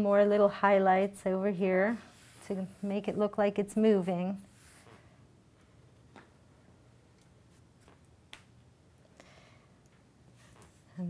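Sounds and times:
marker strokes on paper: 1.0s - 5.1s.

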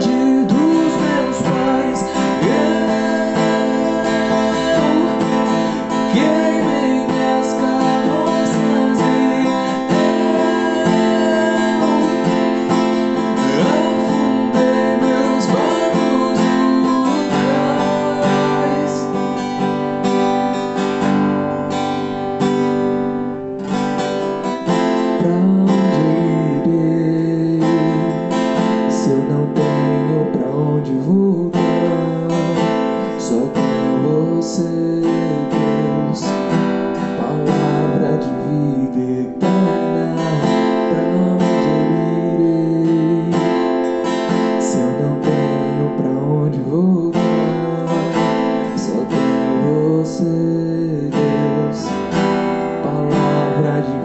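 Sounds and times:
acoustic guitar strummed and picked: 0.0s - 54.0s.

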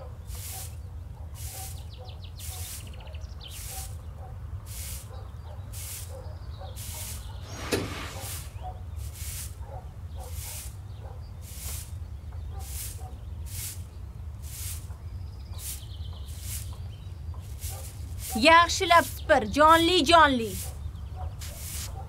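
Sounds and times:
broom sweeping tiled floor: 0.3s - 0.8s, 1.4s - 1.8s, 2.4s - 4.0s, 4.6s - 5.1s, 5.7s - 10.8s, 11.4s - 16.8s, 17.4s - 22.0s.

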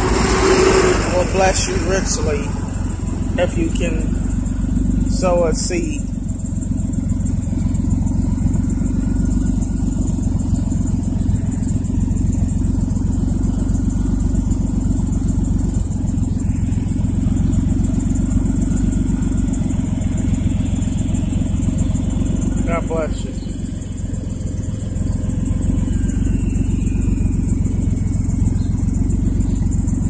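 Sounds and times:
minivan engine idling: 0.0s - 30.0s.

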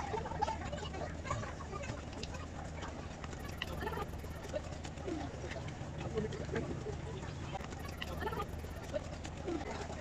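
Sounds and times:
passengers' voices: 0.0s - 10.0s
steady low hum: 0.0s - 10.0s.

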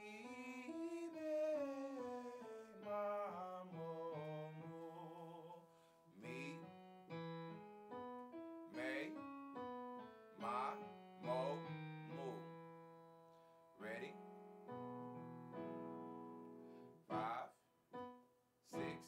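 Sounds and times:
piano chords ringing: 0.0s - 19.0s.

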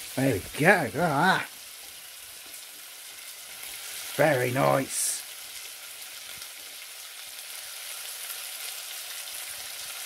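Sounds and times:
bacon sizzling in a frying pan: 0.0s - 10.0s.

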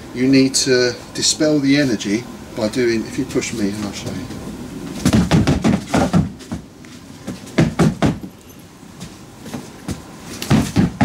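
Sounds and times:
heavy footsteps stamping on floor: 5.0s - 8.3s, 9.0s - 11.0s.

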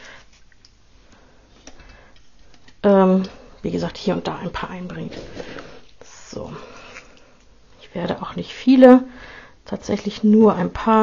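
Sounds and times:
woman speaking: 2.8s - 5.4s, 6.0s - 6.8s, 7.8s - 11.0s.

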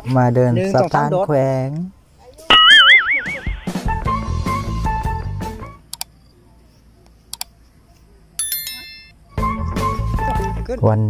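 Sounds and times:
wobbling warbling tone: 2.5s - 3.9s
background music: 2.6s - 5.9s, 9.2s - 10.8s.

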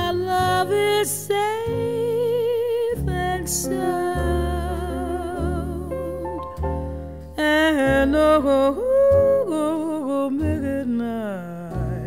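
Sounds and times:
woman singing jazz ballad: 0.0s - 6.6s, 7.3s - 12.0s
guitar: 0.0s - 12.0s
piano: 0.0s - 12.0s
upright bass: 0.0s - 12.0s.

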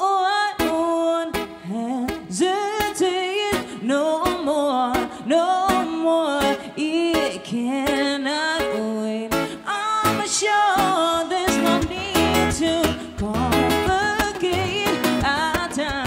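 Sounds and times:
acoustic guitar strumming: 0.0s - 16.0s
woman singing pop melody: 0.0s - 16.0s.

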